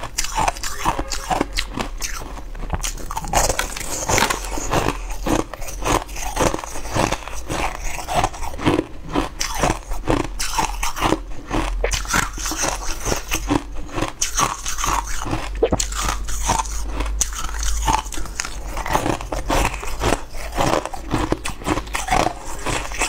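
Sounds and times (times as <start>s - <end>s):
crunching brittle chunks: 0.0s - 23.0s.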